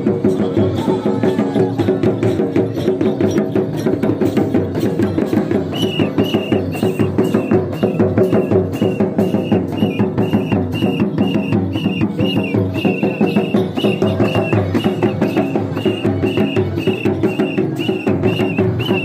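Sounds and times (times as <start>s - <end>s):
hand drums in fast rhythm: 0.0s - 19.0s.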